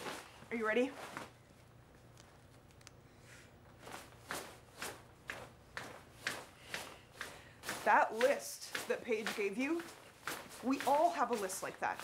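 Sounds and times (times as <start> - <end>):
nylon snow pants swishing: 7.6 - 12.0.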